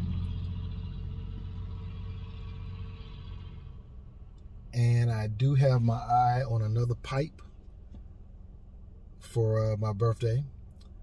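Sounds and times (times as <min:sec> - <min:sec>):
engine hum: 0:00.0 - 0:11.0.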